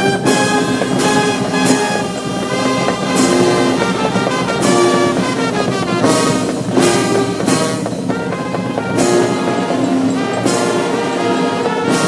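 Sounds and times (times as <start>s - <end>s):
brass band playing: 0.0s - 12.0s.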